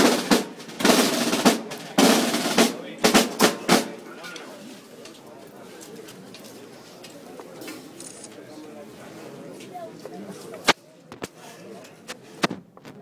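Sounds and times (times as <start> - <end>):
snare and bass drum roll: 0.0 - 4.0
crowd chatter: 0.0 - 13.0.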